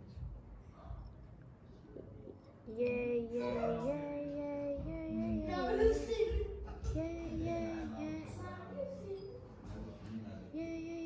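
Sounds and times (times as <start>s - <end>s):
person singing slow tune: 2.6s - 5.7s, 6.9s - 8.4s, 10.5s - 11.0s.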